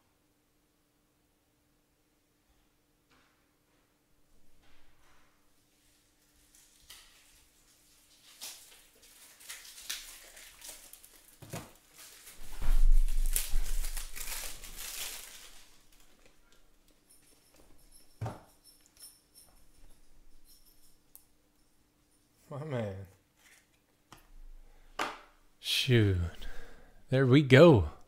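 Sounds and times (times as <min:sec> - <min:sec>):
card packaging crinkling: 0:06.5 - 0:16.5.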